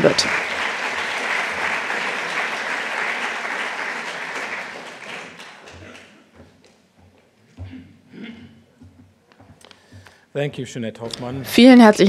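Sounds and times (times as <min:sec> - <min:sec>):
large audience applauding: 0:00.0 - 0:06.4.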